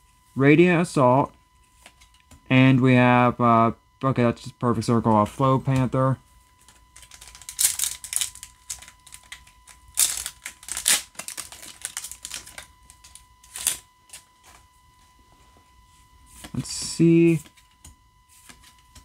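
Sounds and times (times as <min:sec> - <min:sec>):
cards rustling: 0:07.0 - 0:13.8
wrapper crinkling and tearing: 0:07.0 - 0:13.8.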